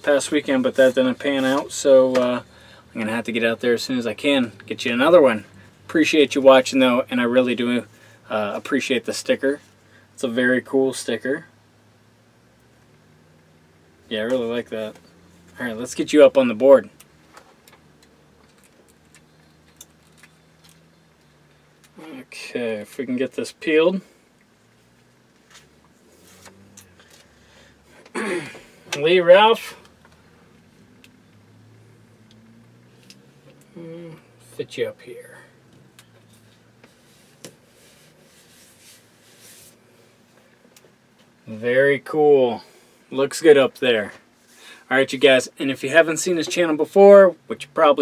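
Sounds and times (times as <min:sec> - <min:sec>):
low steady hum: 0:00.0 - 0:48.0
hand rubbing sticker on board: 0:36.4 - 0:39.8.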